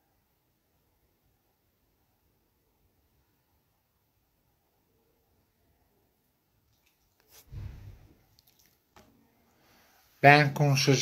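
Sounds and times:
soft low thump: 0:07.5 - 0:08.1.

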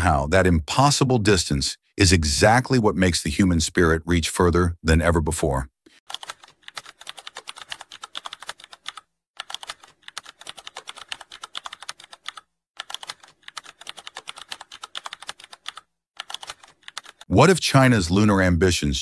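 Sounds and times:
keyboard typing clicks: 0:06.1 - 0:17.2.

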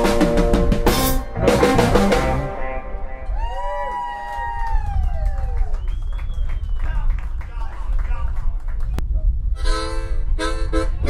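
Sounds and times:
bending lead guitar note: 0:00.0 - 0:03.4
blues band playing: 0:00.0 - 0:03.8.

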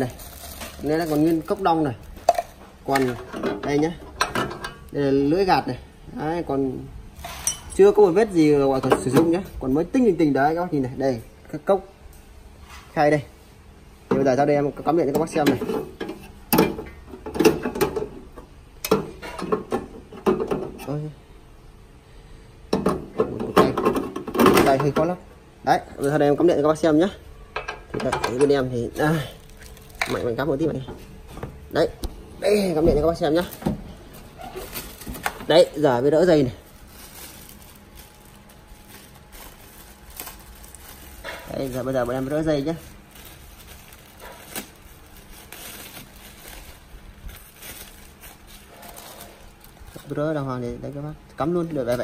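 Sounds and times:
plastic wrapping rustling: 0:00.0 - 0:04.0, 0:26.0 - 0:52.0.

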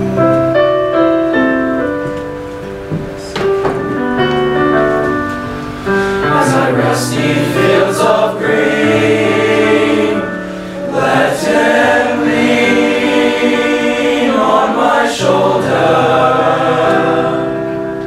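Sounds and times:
male choir singing: 0:06.2 - 0:18.0.

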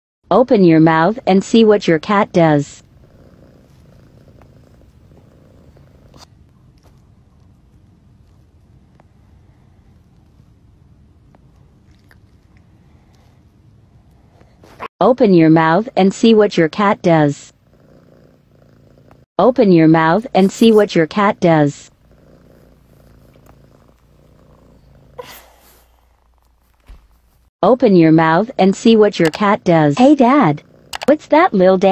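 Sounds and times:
cat purring: 0:01.0 - 0:14.9, 0:16.4 - 0:19.3, 0:20.0 - 0:26.8, 0:30.4 - 0:31.9.

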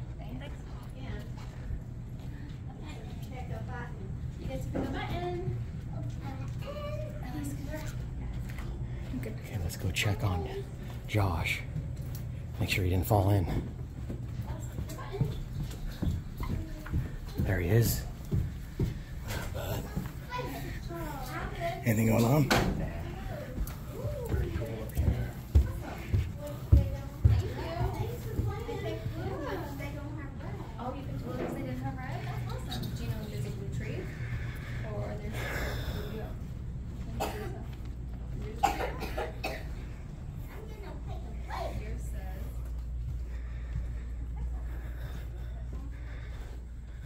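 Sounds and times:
faint voices: 0:00.0 - 0:47.0
low steady hum: 0:00.0 - 0:47.0
footsteps thudding: 0:22.5 - 0:28.5
person coughing: 0:37.2 - 0:37.7, 0:38.6 - 0:39.7.

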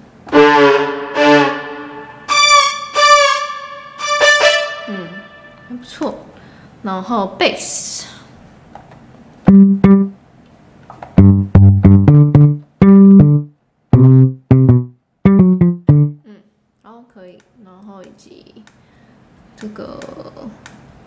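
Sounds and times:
plucked electric bass line: 0:09.5 - 0:10.2, 0:11.2 - 0:16.2.

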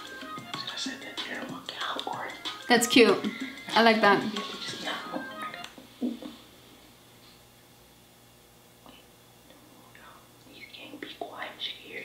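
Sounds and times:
background music: 0:00.0 - 0:05.9.

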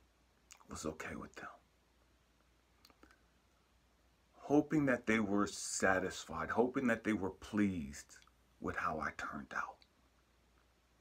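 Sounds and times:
faint clicks: 0:00.4 - 0:00.7, 0:02.4 - 0:03.3.

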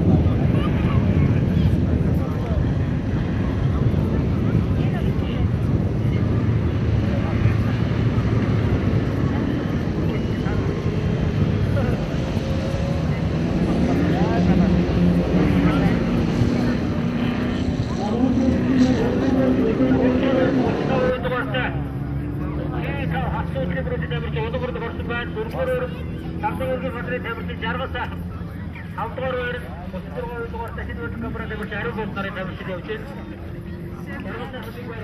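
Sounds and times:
off-road engines running hard: 0:00.0 - 0:35.0.

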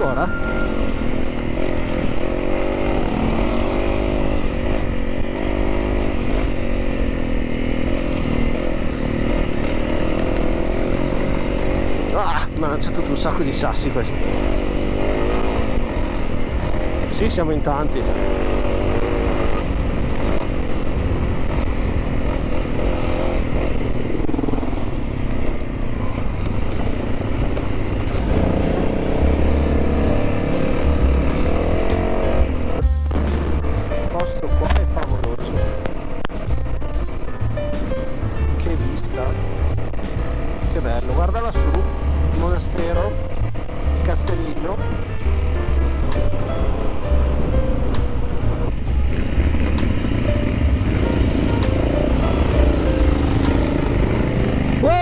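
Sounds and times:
background music: 0:00.0 - 0:55.0
motorcycle engine running: 0:00.0 - 0:55.0.

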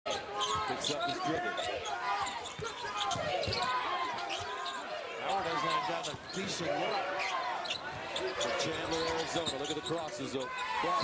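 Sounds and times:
voices in arena: 0:00.1 - 0:11.0.

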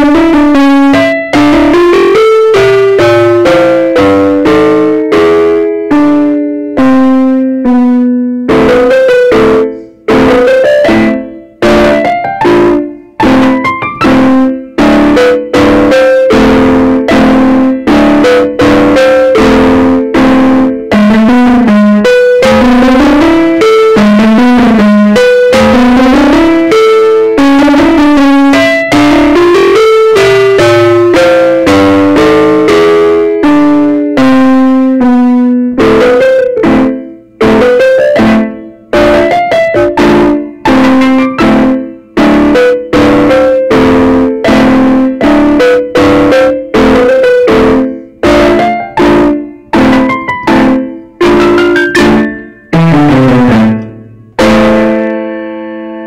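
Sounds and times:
digital keyboard piano piece: 0:00.0 - 0:56.0.

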